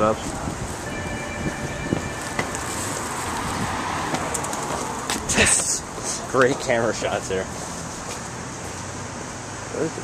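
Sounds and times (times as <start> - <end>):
traffic hum: 0.0 - 10.0
faint high steady tone: 0.8 - 3.1.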